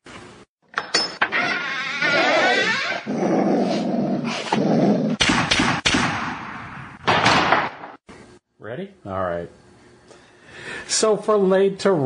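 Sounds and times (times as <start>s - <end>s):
animal growling: 2.0s - 5.2s.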